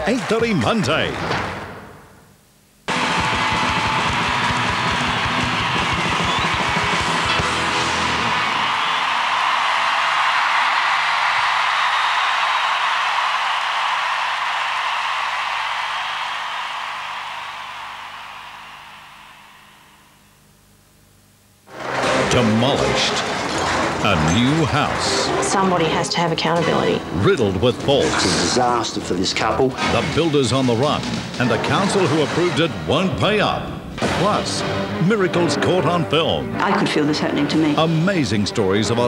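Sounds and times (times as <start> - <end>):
stadium crowd cheering: 0.0 - 1.6, 2.9 - 20.3, 21.7 - 36.4
rock band playing: 2.9 - 9.0.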